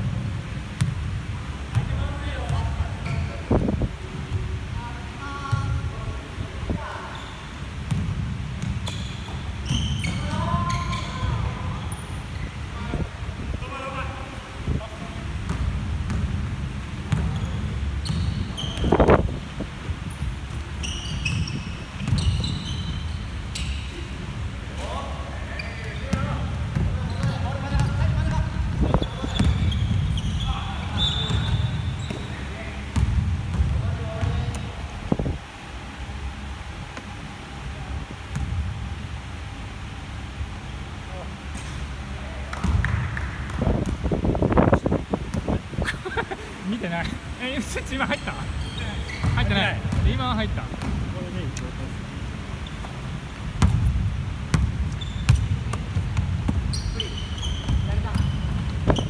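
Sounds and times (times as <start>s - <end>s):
sneakers squeaking: 1.7s - 4.5s, 6.7s - 12.9s, 15.4s - 16.4s, 17.0s - 35.4s, 38.2s - 38.8s, 41.1s - 51.7s, 52.4s - 59.0s
basketball bouncing on wooden floor: 26.1s - 30.3s, 32.9s - 34.7s, 42.6s - 44.1s, 49.2s - 51.1s, 53.6s - 59.0s.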